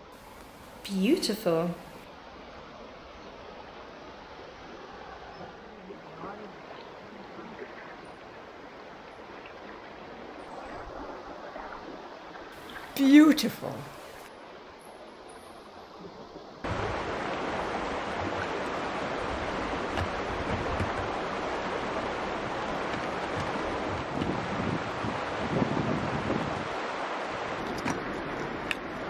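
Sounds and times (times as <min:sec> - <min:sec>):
stream rushing over rocks: 0:01.5 - 0:29.0.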